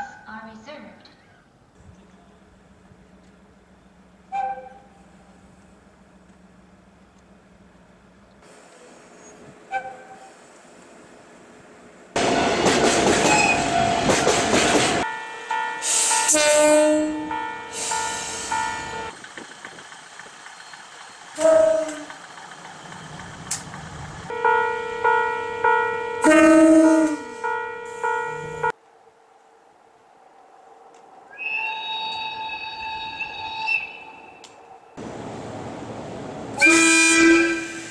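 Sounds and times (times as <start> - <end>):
train horns: 9.7 - 10.3, 12.2 - 19.2, 21.4 - 22.2, 24.3 - 28.7, 31.4 - 34.6, 36.5 - 37.9.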